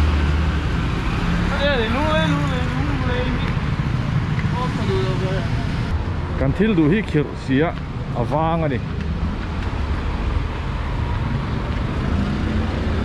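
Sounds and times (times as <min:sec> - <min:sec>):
steady road noise: 0:00.0 - 0:13.0
voices: 0:01.4 - 0:03.6, 0:04.4 - 0:08.9.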